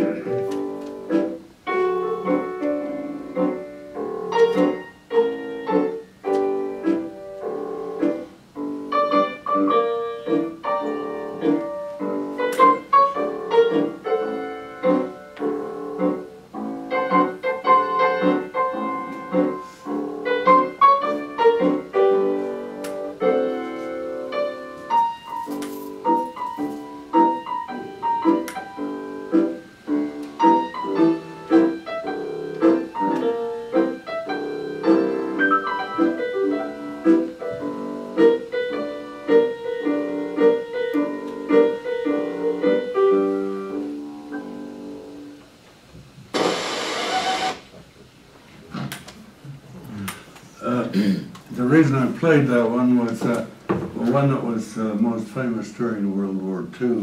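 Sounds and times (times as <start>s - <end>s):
solo piano music: 0.0s - 48.2s.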